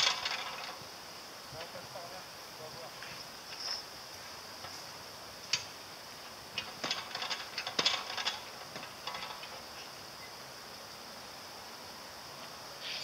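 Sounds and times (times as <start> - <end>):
metallic clicks from playground apparatus: 6.6 - 9.6.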